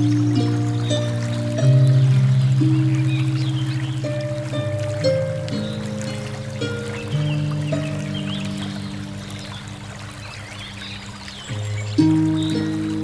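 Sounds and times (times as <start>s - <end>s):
harp playing a slow hymn: 0.0s - 13.0s
river rushing: 0.0s - 13.0s.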